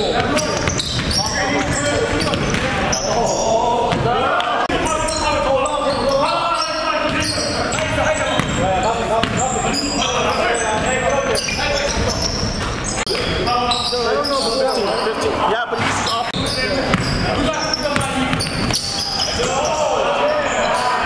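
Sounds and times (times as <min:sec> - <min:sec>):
echoing voices: 0:00.0 - 0:21.0
sneakers squeaking: 0:00.0 - 0:21.0
basketball bouncing on hardwood: 0:09.2 - 0:09.5.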